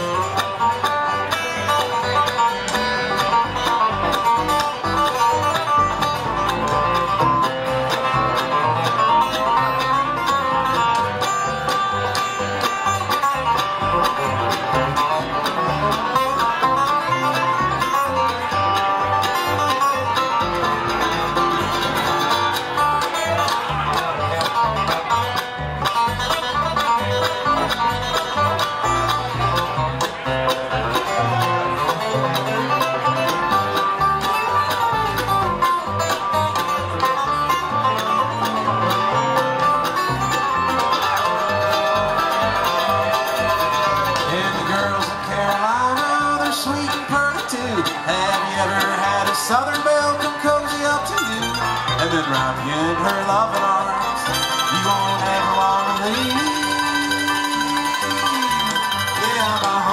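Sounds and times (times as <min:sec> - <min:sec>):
acoustic guitar: 0:00.0 - 0:59.9
banjo: 0:00.0 - 0:59.9
upright bass: 0:00.0 - 0:59.9.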